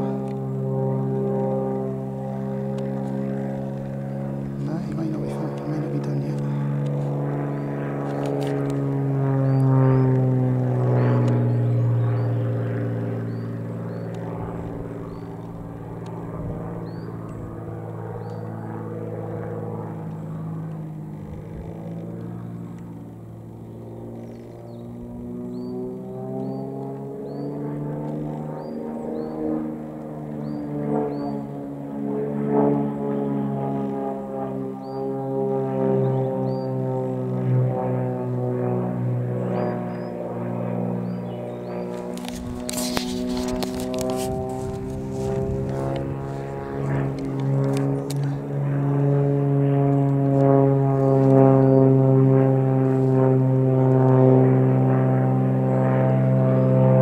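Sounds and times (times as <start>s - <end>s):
propeller plane engine droning: 0.0s - 57.0s.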